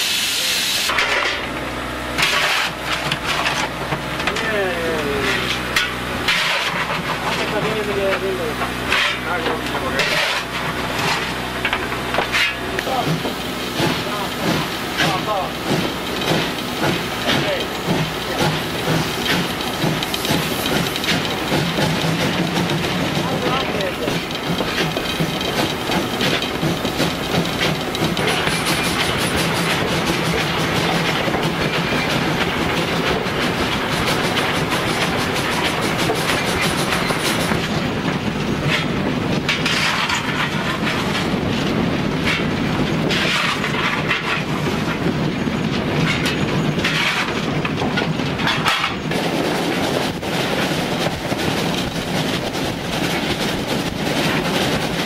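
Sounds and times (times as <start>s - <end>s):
steam locomotive rumbling: 0.0s - 55.0s
wheels clattering over rail joints: 0.9s - 55.0s.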